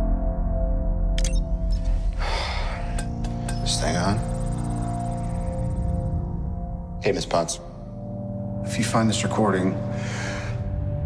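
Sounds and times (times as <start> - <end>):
low drone: 0.0 - 8.7
soft music: 0.0 - 11.0.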